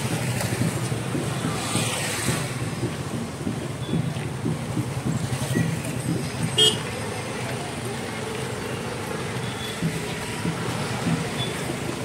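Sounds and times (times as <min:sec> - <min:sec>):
motor scooters running slowly: 0:00.0 - 0:12.0
murmur of voices: 0:02.1 - 0:12.0.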